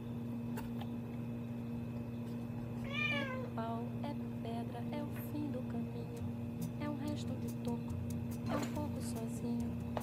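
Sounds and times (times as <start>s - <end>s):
steady low hum: 0.0s - 10.0s
cat meowing: 2.8s - 3.6s.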